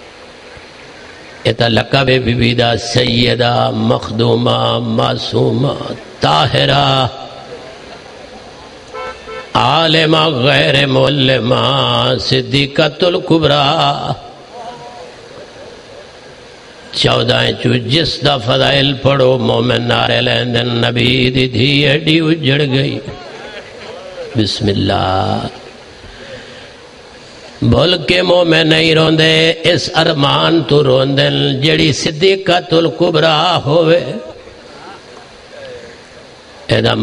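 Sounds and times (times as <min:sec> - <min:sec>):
man chanting into a microphone: 0:01.4 - 0:07.4, 0:09.5 - 0:14.5, 0:16.9 - 0:23.2, 0:24.4 - 0:25.6, 0:27.6 - 0:34.4, 0:36.7 - 0:37.0.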